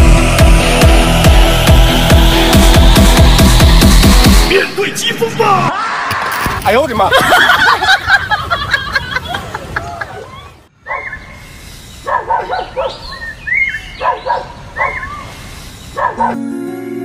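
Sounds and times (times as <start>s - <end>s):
dog barking: 10.9s - 11.3s, 12.0s - 15.3s, 16.0s - 16.4s.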